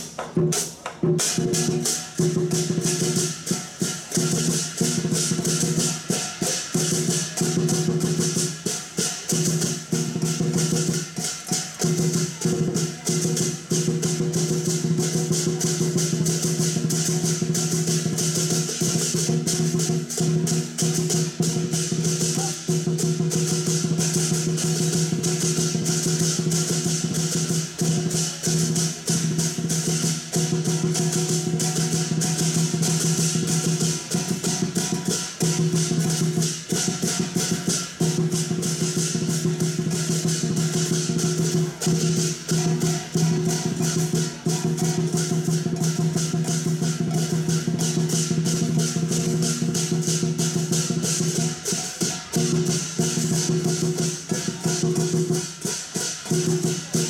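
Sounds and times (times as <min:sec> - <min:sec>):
crashing cymbals: 0:00.0 - 0:57.0
drum beating fast rhythm: 0:00.0 - 0:57.0.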